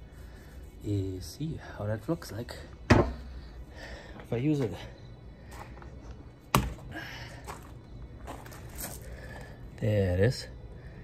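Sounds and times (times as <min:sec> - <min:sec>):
mud ball hitting a wall: 0:02.9 - 0:03.3, 0:06.5 - 0:06.9.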